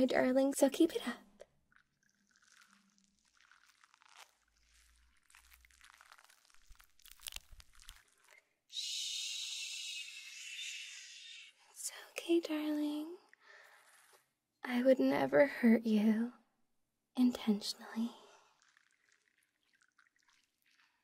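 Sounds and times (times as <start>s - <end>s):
crinkling and clicking of small objects: 1.8s - 8.5s
scratchy brushing: 13.6s - 14.2s.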